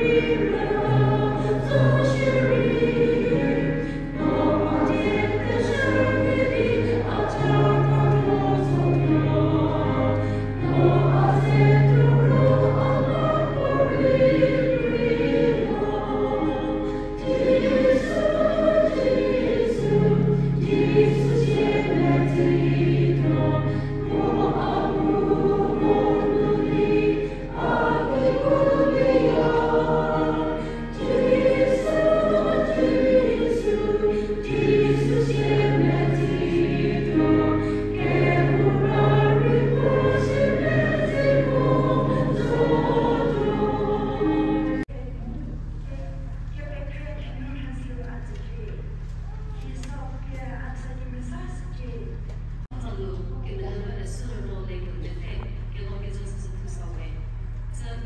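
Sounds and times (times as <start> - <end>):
choir singing a hymn: 0.0 - 44.9.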